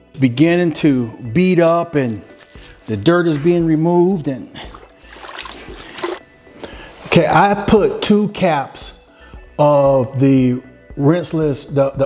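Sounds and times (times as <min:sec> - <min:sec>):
water sloshing in bucket: 0:04.6 - 0:06.2.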